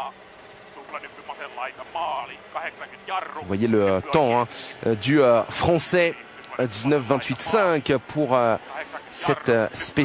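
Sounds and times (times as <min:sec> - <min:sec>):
faint engine hum: 0:00.0 - 0:10.0
co-driver voice over intercom: 0:00.8 - 0:10.0.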